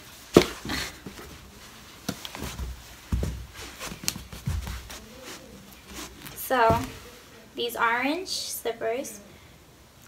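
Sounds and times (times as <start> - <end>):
faint steady hum: 0.0 - 10.0
dull thump on floor: 2.1 - 5.0, 6.3 - 7.0.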